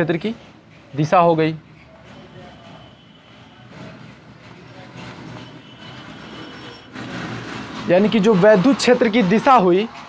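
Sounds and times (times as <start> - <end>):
marker squeaking on whiteboard: 1.7 - 8.9.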